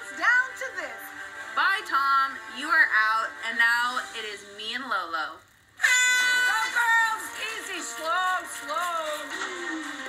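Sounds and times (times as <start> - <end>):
woman speaking: 0.0 - 5.4, 6.4 - 9.4.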